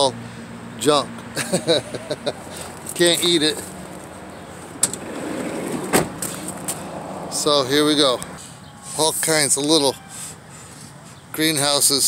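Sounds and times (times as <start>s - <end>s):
outdoor background noise: 0.0s - 12.0s
footsteps crunching on gravel: 2.4s - 4.7s.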